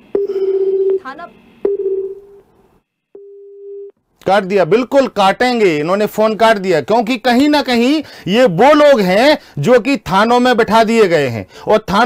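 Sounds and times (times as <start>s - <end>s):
telephone busy tone beeps: 0.1s - 1.0s, 1.6s - 2.4s, 3.2s - 3.9s.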